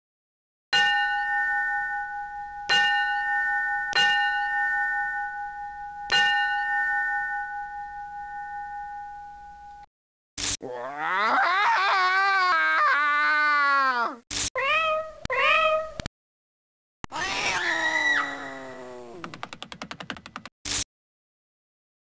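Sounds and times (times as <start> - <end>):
bell ringing: 0.8 - 9.9.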